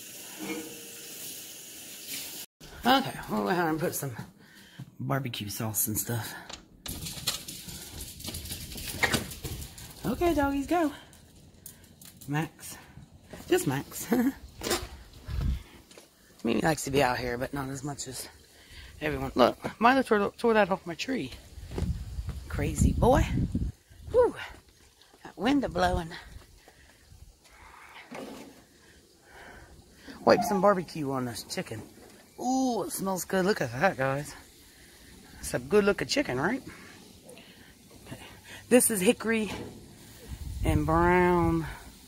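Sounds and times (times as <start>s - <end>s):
wind buffeting microphone: 15.1s - 15.7s, 21.5s - 24.3s.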